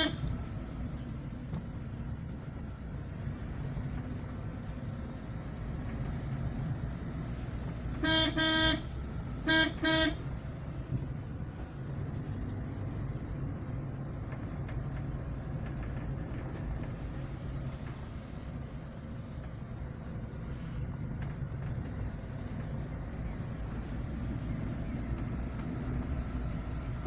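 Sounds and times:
car horn toots: 0:00.0 - 0:00.3, 0:08.0 - 0:10.2
car engine and road rumble: 0:00.0 - 0:27.0.

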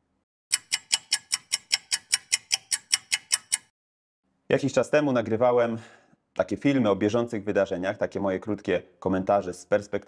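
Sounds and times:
clock ticking fast: 0:00.5 - 0:03.7.

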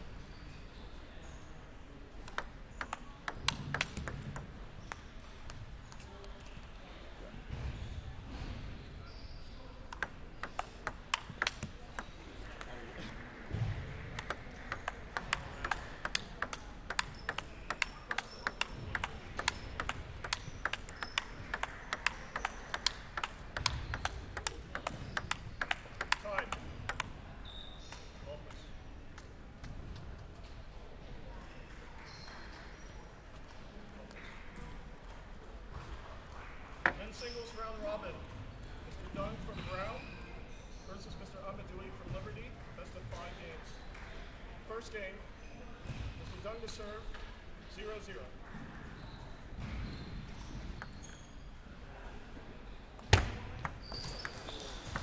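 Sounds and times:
table tennis ball rally: 0:02.1 - 0:06.7, 0:09.8 - 0:28.1, 0:53.0 - 0:55.0.

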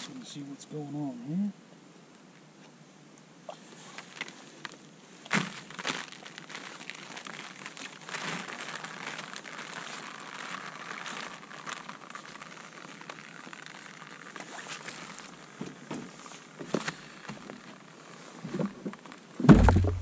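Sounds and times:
water splashing and trickling: 0:05.2 - 0:17.4.

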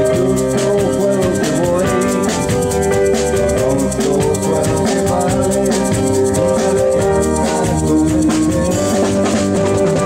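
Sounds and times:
drums and percussion: 0:00.0 - 0:10.0
keyboard notes: 0:00.0 - 0:10.0
sustained guitar notes: 0:00.0 - 0:10.0.

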